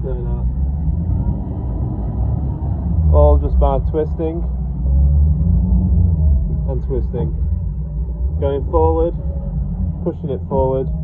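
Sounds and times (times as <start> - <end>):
outboard engines rumbling: 0.0 - 11.0.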